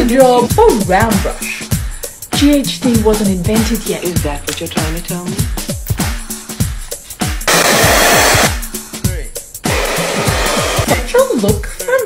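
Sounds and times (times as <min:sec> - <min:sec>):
spray can hissing: 0:07.4 - 0:08.6, 0:09.7 - 0:11.0
hair dryer blowing: 0:07.5 - 0:08.6, 0:09.7 - 0:11.1.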